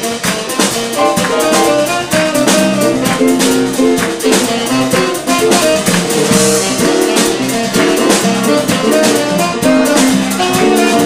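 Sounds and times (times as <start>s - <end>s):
drum kit beat: 0.0s - 11.0s
live jazz-soul band playing: 0.0s - 11.0s
saxophone line: 0.8s - 6.2s.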